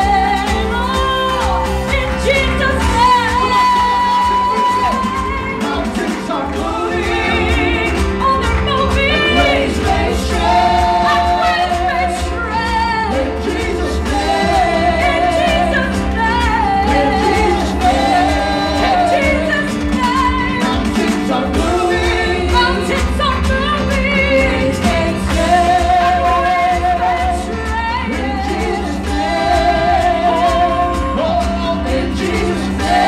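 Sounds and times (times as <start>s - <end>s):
drums: 0.0s - 33.0s
keyboard: 0.0s - 33.0s
women singing together: 0.0s - 33.0s.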